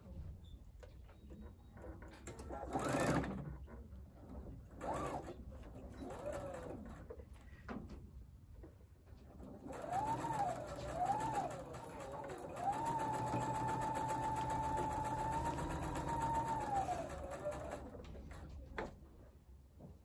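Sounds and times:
sewing machine stitching: 2.3s - 3.6s, 4.8s - 7.0s, 9.4s - 18.5s.

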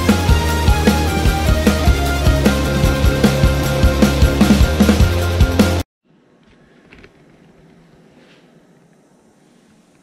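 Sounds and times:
faint rustles of handheld camera: 6.4s - 10.0s.

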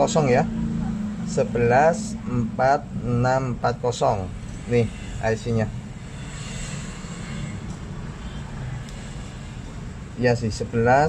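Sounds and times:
steady hum and hiss: 0.0s - 11.0s.

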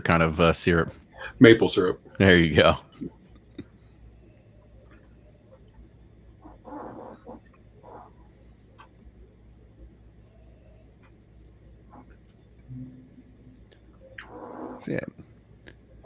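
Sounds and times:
steady low hum: 0.0s - 16.0s
faint clicks: 3.3s - 5.8s.

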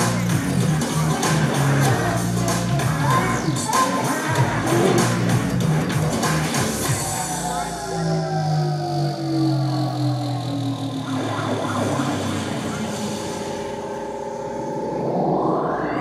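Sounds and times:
rising synth sweep: 6.8s - 16.0s
sustained synth tones: 6.8s - 16.0s.

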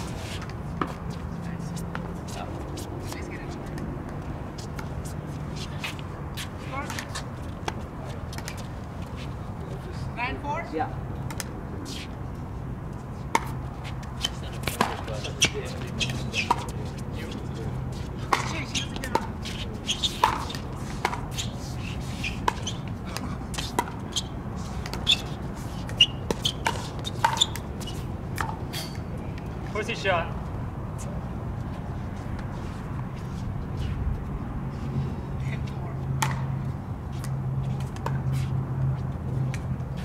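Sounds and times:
paddles striking pickleball: 14.2s - 16.8s, 18.3s - 21.4s, 22.4s - 27.7s.

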